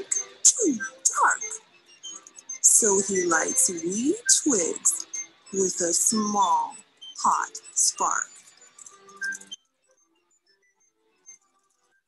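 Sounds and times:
soft sparse background music: 0.0 - 12.0.

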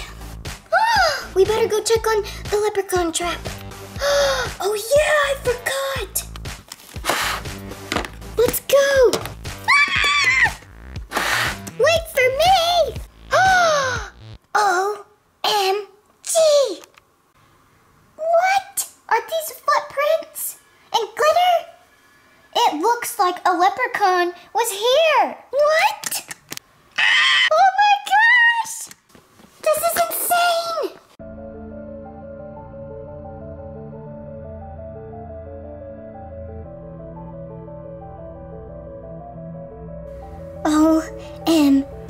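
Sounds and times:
background music: 0.0 - 14.4, 31.2 - 42.0.

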